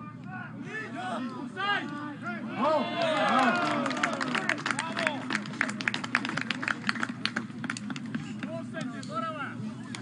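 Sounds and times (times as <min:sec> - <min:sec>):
spectators clapping: 0:02.9 - 0:08.6.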